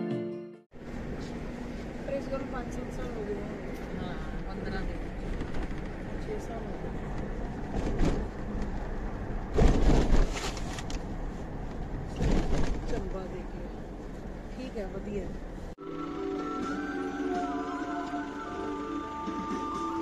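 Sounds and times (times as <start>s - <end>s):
car road and engine rumble: 0.7s - 16.8s.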